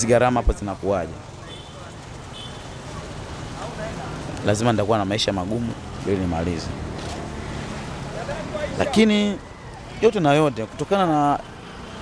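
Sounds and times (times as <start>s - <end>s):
vehicles running: 0.0s - 12.0s.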